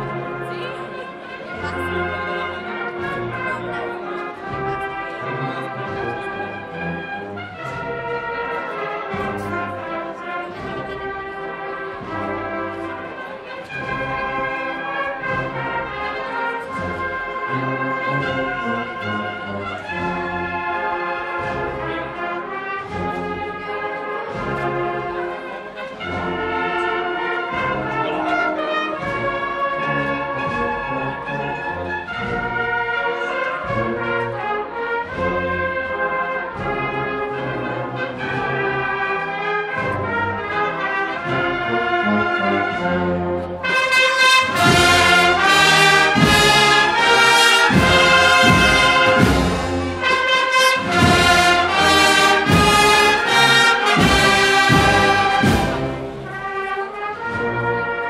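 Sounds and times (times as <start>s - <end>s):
brass band playing a slow march: 0.0s - 58.0s
drum beats: 43.7s - 56.7s.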